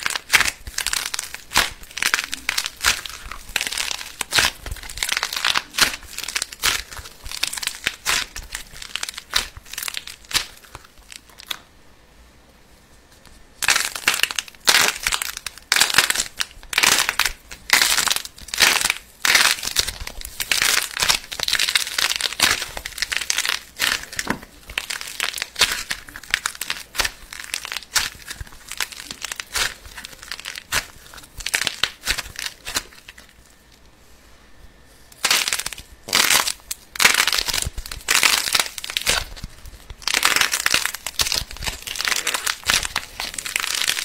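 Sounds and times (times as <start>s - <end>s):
putty crinkling and tearing: 0.0s - 11.6s, 13.6s - 33.6s, 35.1s - 44.0s.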